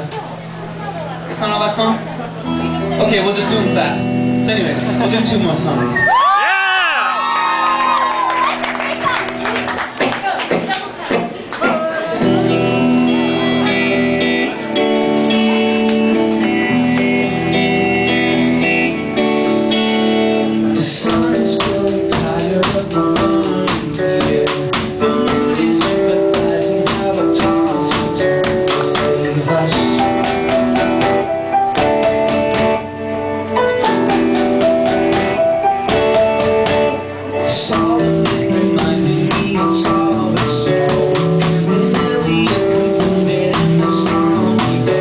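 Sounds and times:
sustained keyboard chords: 0.0 - 6.0, 8.2 - 45.0
drums and electric guitar: 2.0 - 45.0
rock band playing live: 2.0 - 45.0.

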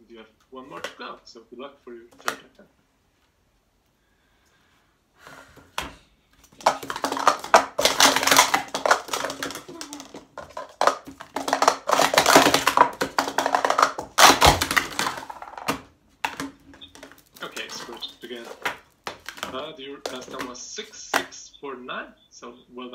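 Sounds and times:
plastic cups clattering: 0.7 - 1.0, 5.8 - 21.5
cups tipping over and scattering: 5.8 - 21.4.

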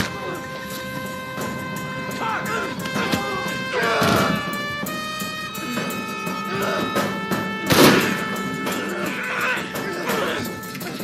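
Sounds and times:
film score with sustained strings: 0.0 - 11.0.

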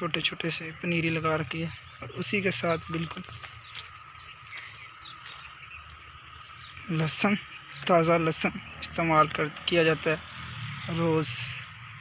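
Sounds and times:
man speaking: 0.0 - 3.6, 6.8 - 10.2, 10.9 - 11.7
frogs calling: 0.0 - 12.0.

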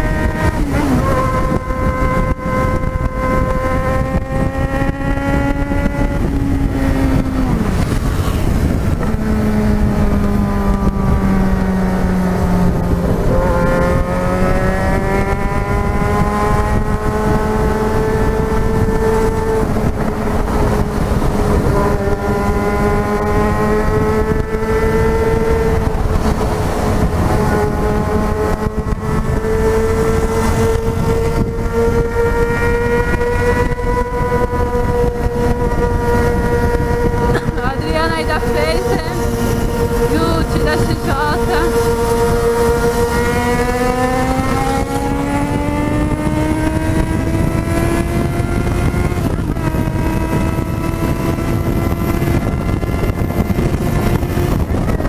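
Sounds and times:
motorcycle engine cruising: 0.0 - 55.0
wind noise rushing: 0.0 - 55.0.

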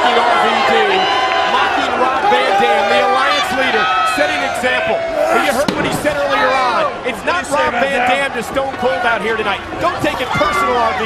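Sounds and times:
arena crowd noise: 0.0 - 11.0
men's voices: 0.0 - 11.0.

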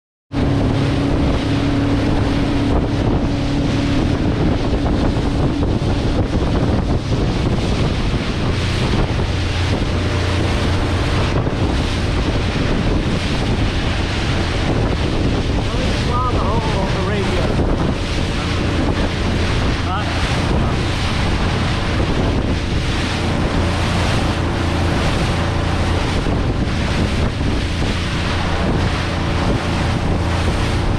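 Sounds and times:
water splashing along boat hull: 0.3 - 30.9
wind buffeting microphone: 0.3 - 30.9.

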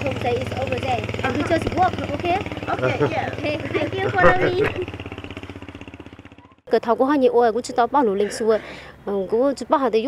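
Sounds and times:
engine running with rapid pulse: 0.0 - 9.1.

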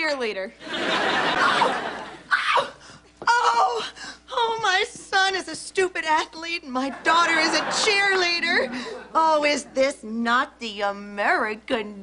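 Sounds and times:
woman wailing: 2.3 - 4.6.

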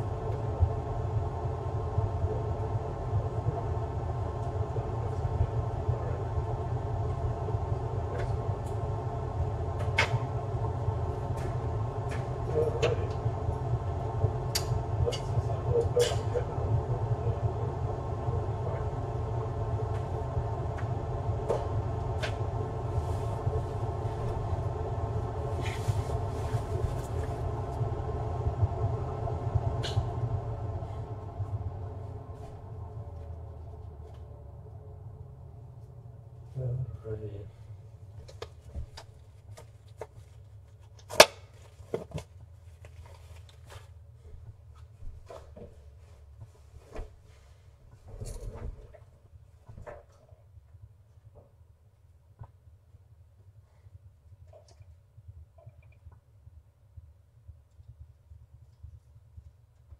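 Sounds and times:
low machine hum: 0.0 - 40.8.

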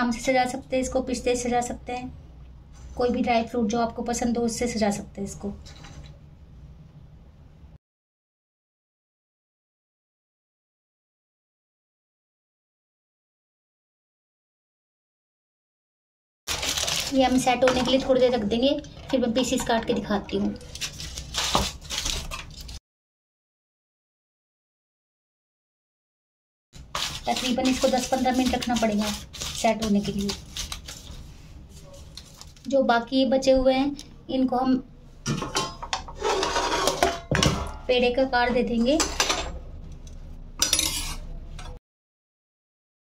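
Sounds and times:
aluminium foil crinkling: 16.5 - 18.4, 20.5 - 22.8, 26.8 - 32.7
metal spoon scraping a pan: 26.8 - 31.2, 35.4 - 39.6, 40.6 - 41.8.

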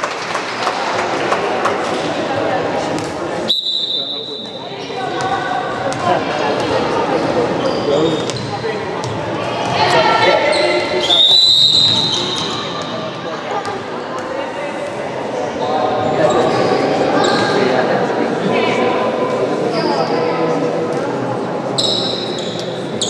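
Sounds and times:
referee's whistle: 3.5 - 4.6, 10.5 - 12.6
sneakers squeaking: 3.8 - 14.3, 21.8 - 23.0.

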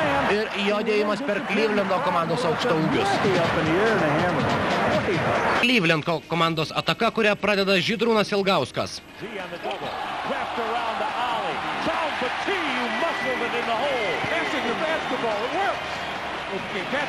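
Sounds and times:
crowd noise: 0.0 - 5.9, 9.1 - 17.0.

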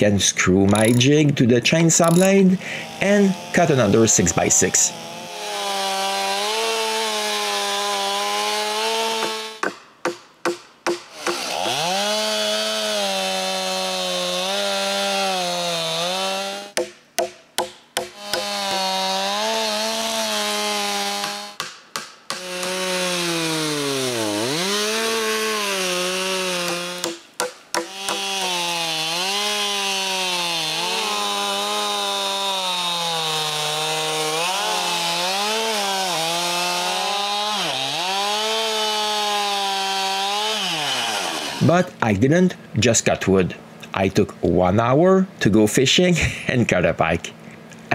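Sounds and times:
chainsaw cutting a log: 0.7 - 1.1, 2.0 - 41.9.

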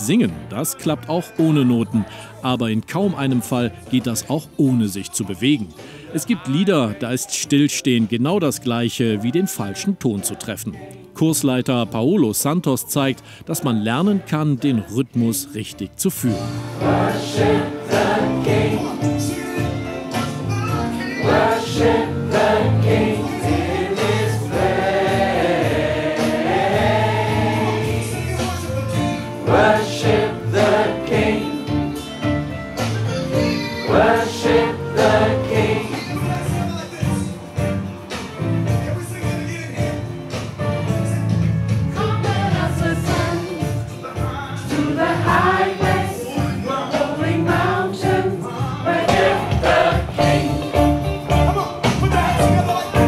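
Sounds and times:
gospel choir singing: 16.4 - 36.7, 42.0 - 53.0
steady beat: 47.0 - 52.7.

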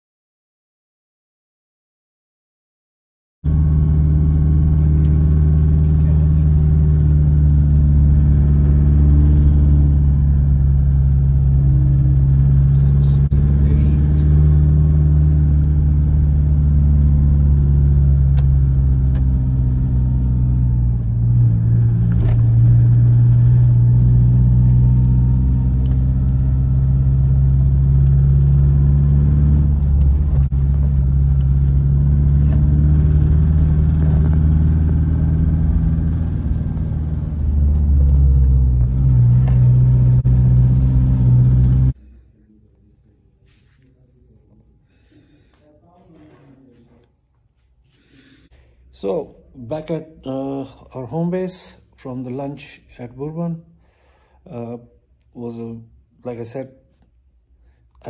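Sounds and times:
car engine humming: 3.5 - 42.0
road noise: 3.5 - 46.8.

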